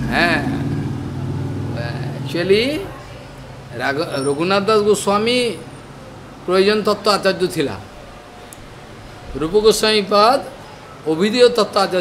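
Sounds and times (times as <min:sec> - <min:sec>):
engine humming steadily: 0:00.0 - 0:02.8.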